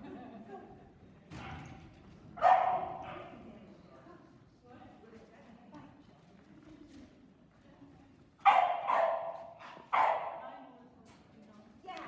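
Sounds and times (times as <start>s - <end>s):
dog barking loudly with echo: 2.4s - 3.2s, 8.5s - 10.4s.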